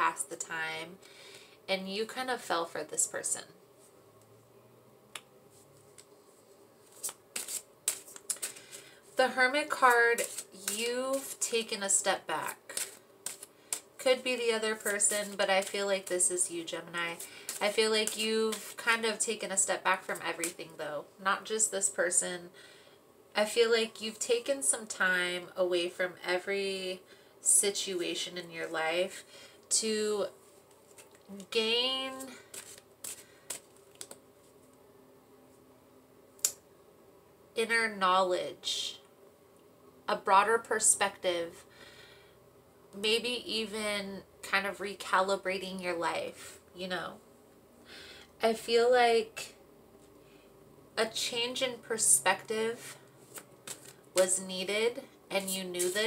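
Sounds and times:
cards rustling: 0:06.8 - 0:18.8, 0:30.5 - 0:34.5, 0:53.2 - 0:54.3, 0:55.4 - 0:56.0
cards clicking and snapping: 0:12.7 - 0:13.9, 0:32.5 - 0:34.2.

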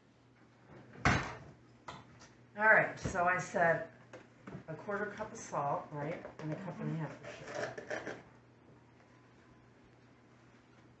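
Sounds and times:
kitchenware clatter: 0:06.2 - 0:08.3.

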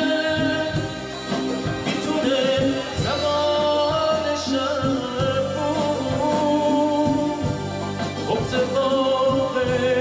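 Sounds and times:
drums: 0:00.0 - 0:10.0
keyboards: 0:00.0 - 0:10.0
man singing into a microphone: 0:00.0 - 0:10.0.

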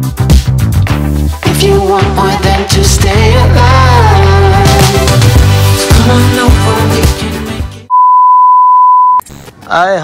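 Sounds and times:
pop music: 0:00.0 - 0:07.9
steady test tone beep: 0:07.9 - 0:09.2.

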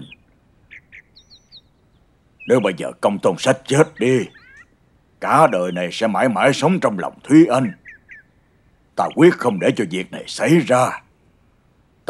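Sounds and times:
bird chirps: 0:00.0 - 0:11.1.

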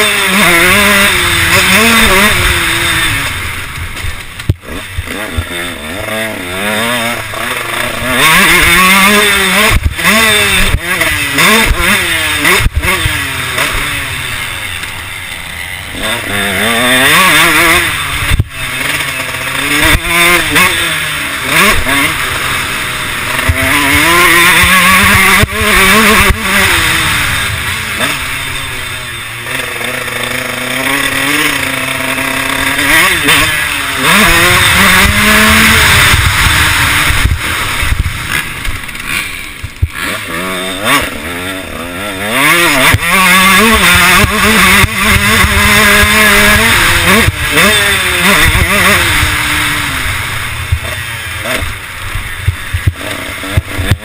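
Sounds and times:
motocross engine revving: 0:00.0 - 0:54.0.

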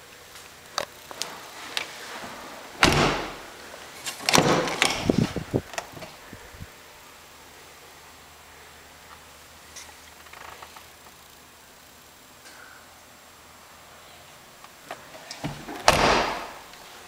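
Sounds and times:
truck door shutting: 0:02.8 - 0:03.4.

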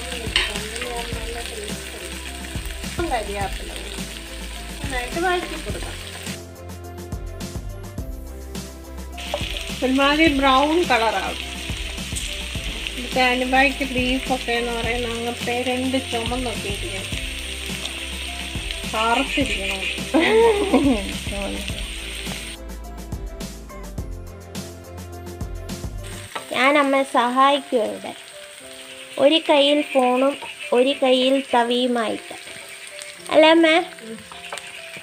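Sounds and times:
vegetables sizzling in oil: 0:00.0 - 0:06.5, 0:08.2 - 0:22.6, 0:25.7 - 0:35.0.

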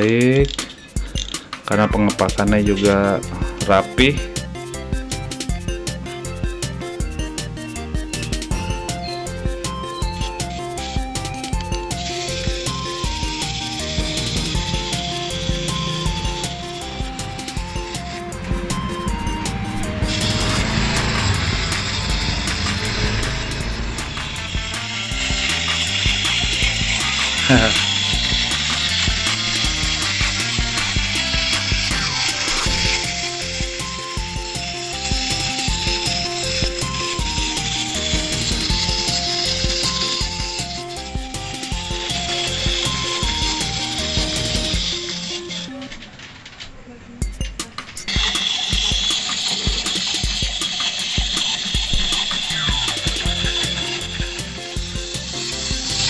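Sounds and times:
clockwork toy whirring: 0:00.0 - 0:04.8, 0:05.4 - 0:56.0
background music melody: 0:00.0 - 0:56.0
person laughing: 0:27.4 - 0:27.9.

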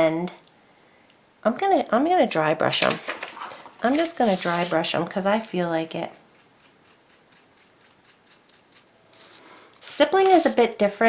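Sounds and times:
paintbrush scratchy strokes: 0:04.0 - 0:04.9, 0:06.2 - 0:09.4.

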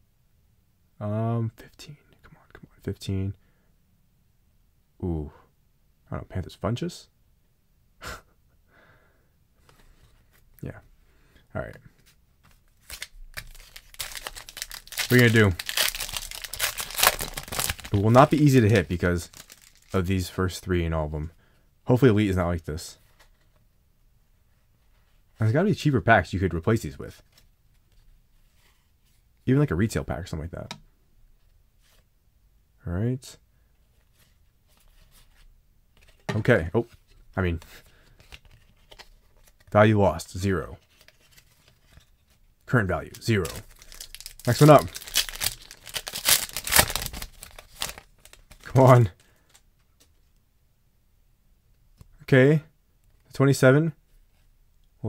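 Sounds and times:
man breathing out sharply: 0:08.7 - 0:09.4
trading cards rustling: 0:11.9 - 0:20.3, 0:33.9 - 0:39.8, 0:40.5 - 0:42.4, 0:43.1 - 0:50.2.

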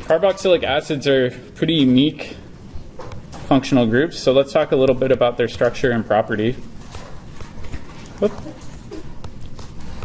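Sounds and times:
stylus tapping and scratching on screen: 0:04.6 - 0:10.0.

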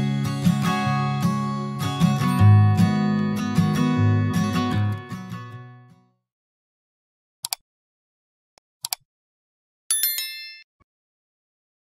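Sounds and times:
notification bell ding: 0:09.9 - 0:10.7.

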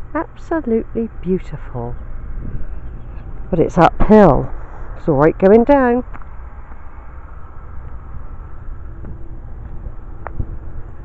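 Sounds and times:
wind rumbling on microphone: 0:00.9 - 0:11.0.

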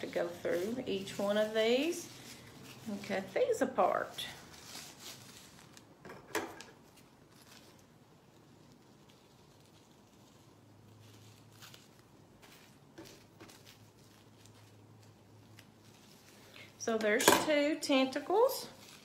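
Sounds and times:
plastic rustling: 0:00.0 - 0:19.0
scissors snipping plastic bag: 0:11.1 - 0:19.0.

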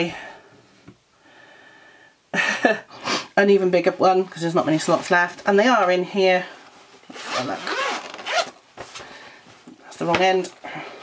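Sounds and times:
zipper pulled open: 0:07.1 - 0:08.6.

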